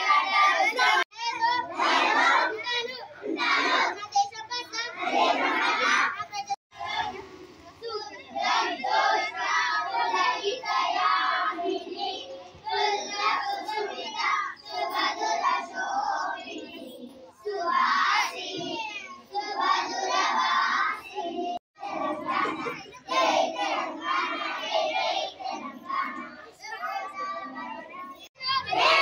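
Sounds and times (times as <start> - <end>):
children singing in unison: 0.0 - 4.0, 4.9 - 6.2, 6.8 - 29.0.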